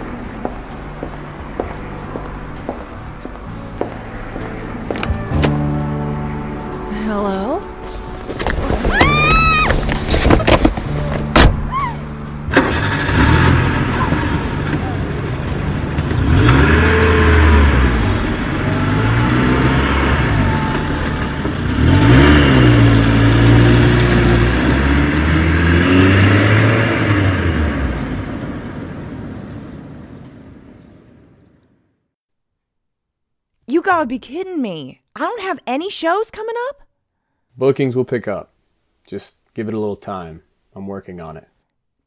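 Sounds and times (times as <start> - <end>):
car engine starting and revving: 12.4 - 30.6.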